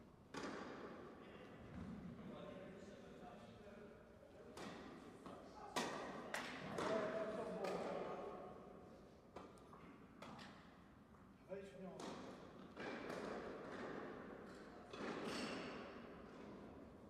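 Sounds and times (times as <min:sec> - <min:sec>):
ball bouncing on indoor court: 0:00.3 - 0:01.1, 0:11.9 - 0:16.7.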